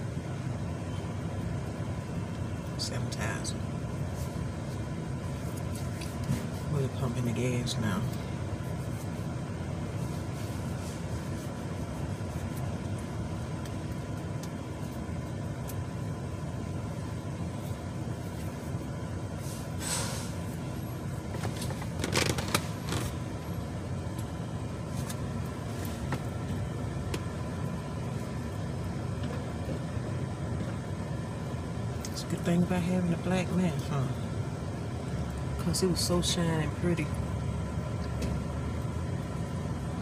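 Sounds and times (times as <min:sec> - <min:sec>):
vehicle engine idling: 0:00.0 - 0:40.0
short hiss: 0:19.4 - 0:20.5.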